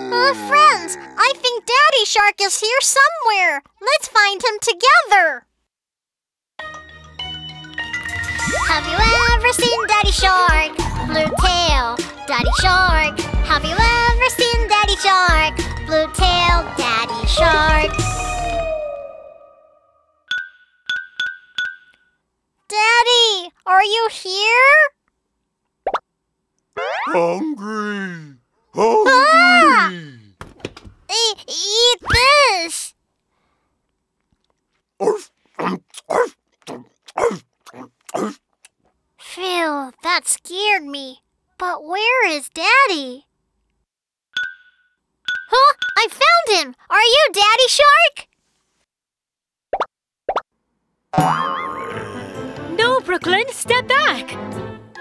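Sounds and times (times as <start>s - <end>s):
rising cartoon plop effects: 8.3s - 10.0s, 25.8s - 26.0s, 26.8s - 27.2s, 49.7s - 50.4s, 51.2s - 52.1s
cartoon plop rising in pitch: 25.8s - 26.0s, 49.7s - 50.4s, 51.2s - 52.1s.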